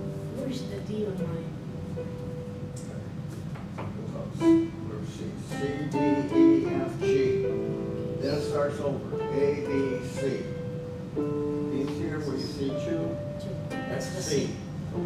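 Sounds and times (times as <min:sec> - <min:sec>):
electronic keyboard notes: 0:00.0 - 0:15.0.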